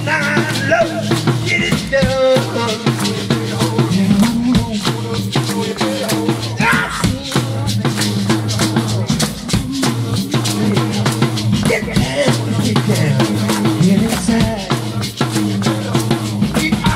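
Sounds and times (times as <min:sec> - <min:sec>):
person singing: 0:00.0 - 0:16.9
rock and roll band playing: 0:00.0 - 0:16.9.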